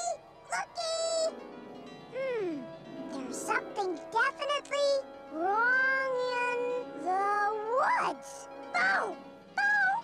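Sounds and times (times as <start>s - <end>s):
sustained background music chord: 1.3s - 6.0s.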